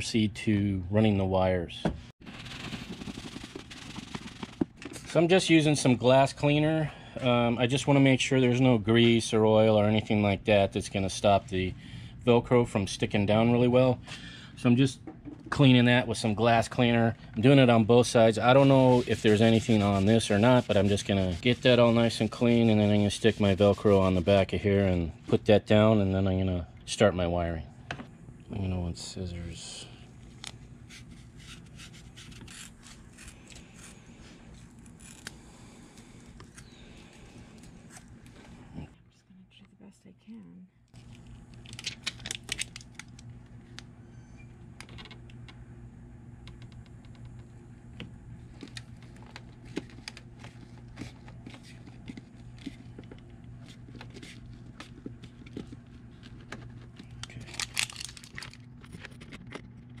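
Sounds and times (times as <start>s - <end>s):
steady low hum: 0.0s - 60.0s
hands handling plastic charger: 48.5s - 60.0s.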